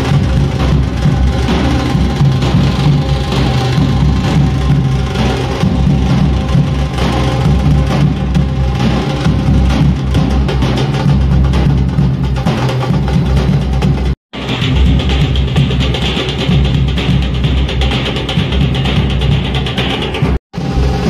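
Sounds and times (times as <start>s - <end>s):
drum-heavy music: 0.0s - 21.0s
heavy bass drum: 0.0s - 21.0s.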